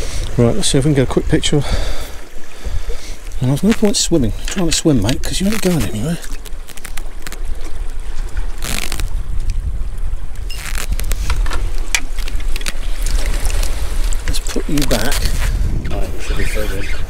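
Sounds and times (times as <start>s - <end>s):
wind buffeting microphone: 7.0s - 17.0s.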